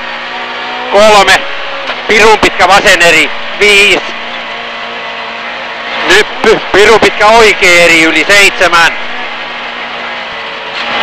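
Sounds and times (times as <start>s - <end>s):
car engine droning: 0.0s - 11.0s
road and tyre noise: 0.0s - 11.0s.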